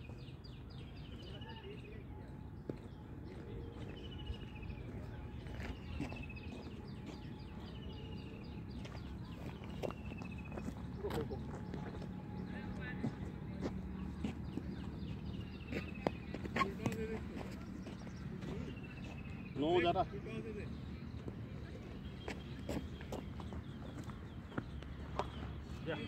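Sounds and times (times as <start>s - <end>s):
faint distant voices: 0.0s - 26.0s.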